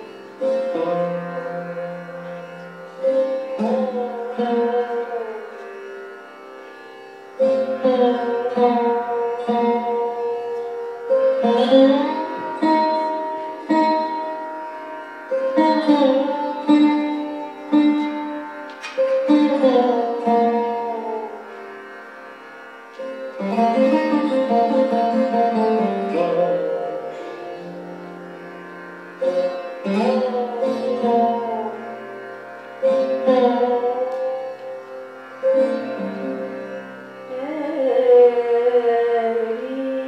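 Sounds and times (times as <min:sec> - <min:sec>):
plucked sarod notes: 0:00.0 - 0:40.0.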